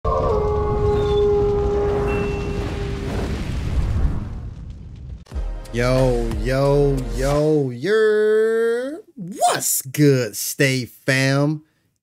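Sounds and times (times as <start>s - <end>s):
wolf howling: 0.1s - 2.3s
low rumble: 0.1s - 5.3s.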